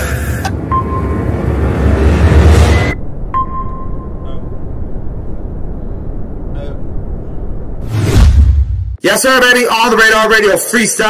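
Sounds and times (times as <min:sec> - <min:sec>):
subway train rumble: 0:00.0 - 0:07.1.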